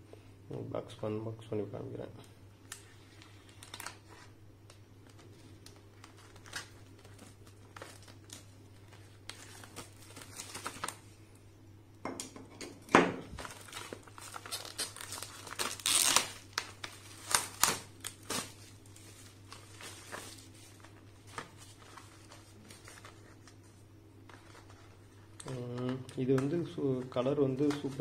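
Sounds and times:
plastic shrink-wrap crinkling and tearing: 2.6 - 11.2, 13.3 - 23.7, 24.3 - 28.0.

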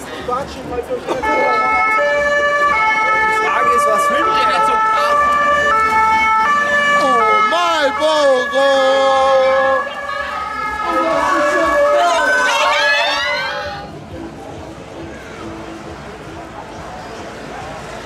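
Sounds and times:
two-tone emergency siren: 1.3 - 13.6.

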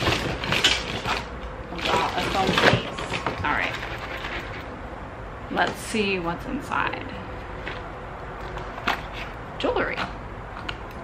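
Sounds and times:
handling jewelry box: 0.0 - 4.8, 7.3 - 11.0.

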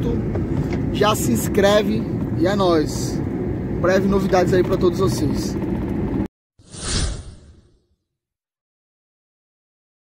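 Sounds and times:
whoosh sound effect: 6.6 - 7.9.

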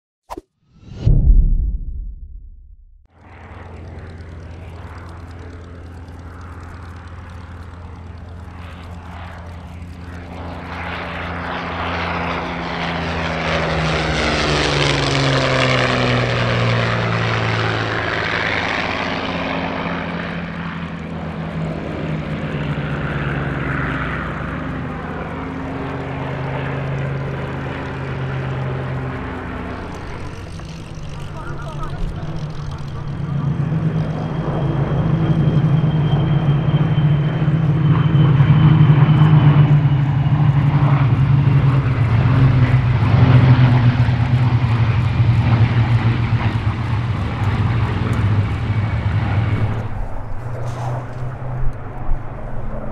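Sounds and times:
drone of several planes: 0.3 - 52.9
propeller plane engine flying past: 3.1 - 52.9.

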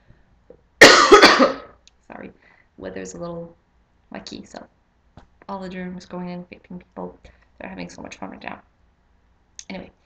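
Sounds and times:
woman coughing harshly: 0.8 - 1.8.

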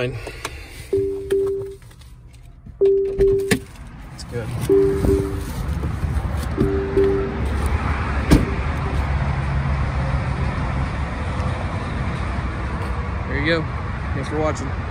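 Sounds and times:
road traffic: 0.0 - 14.9
car warning chime: 0.9 - 1.8, 2.8 - 3.6, 4.6 - 5.6, 6.5 - 7.6
car door shutting: 4.7 - 7.4, 8.2 - 8.6.

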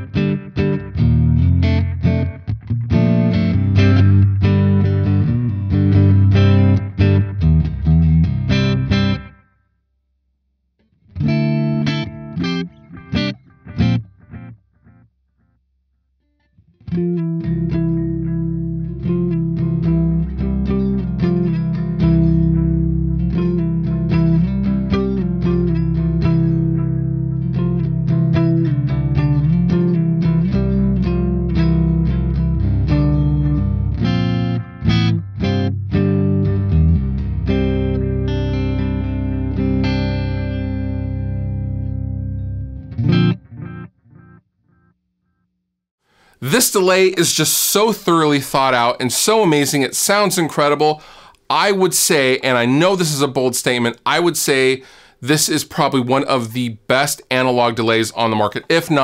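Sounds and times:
electric guitar with delay: 0.0 - 9.4, 11.2 - 15.0, 16.9 - 44.9.

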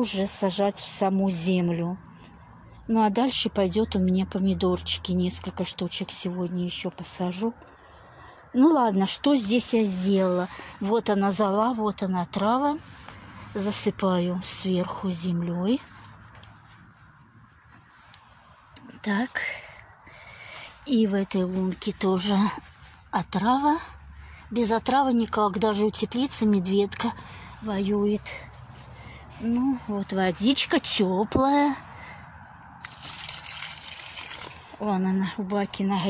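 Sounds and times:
soil crumbling and rustling: 32.8 - 34.8.

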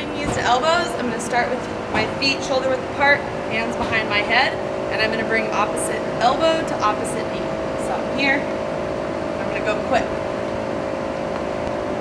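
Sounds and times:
machine humming: 0.0 - 12.0.

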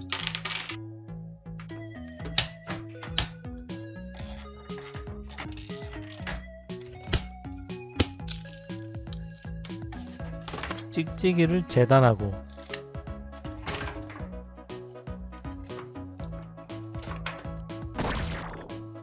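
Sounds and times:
background music with low notes: 0.0 - 19.0
plastic parts clicking and clattering: 4.2 - 7.2, 8.2 - 11.0, 12.4 - 12.8, 13.5 - 14.3, 15.3 - 17.6.

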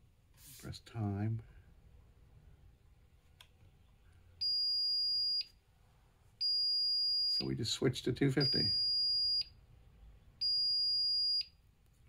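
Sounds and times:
high-pitched alarm beep: 6.4 - 7.4, 8.4 - 9.5, 10.4 - 11.5.

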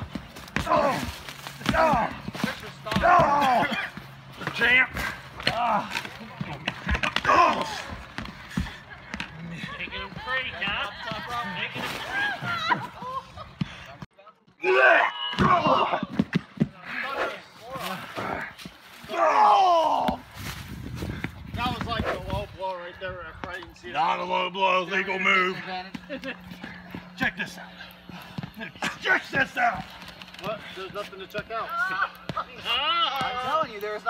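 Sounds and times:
excited shouting voices: 0.6 - 8.1, 9.3 - 13.4, 17.0 - 20.3, 31.4 - 34.0.

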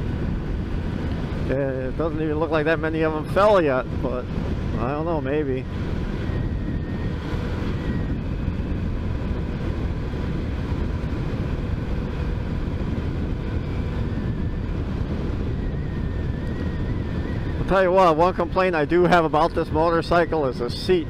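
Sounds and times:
motorcycle engine cruising: 0.0 - 20.6
wind rushing over microphone: 0.0 - 21.0.

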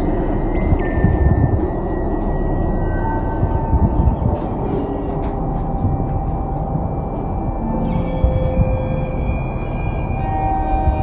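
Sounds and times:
deep steady rumble: 0.0 - 11.0.

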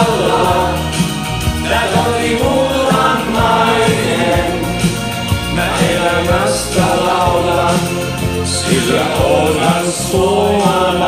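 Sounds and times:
instrumental backing: 0.0 - 11.0
men singing: 0.0 - 11.0.

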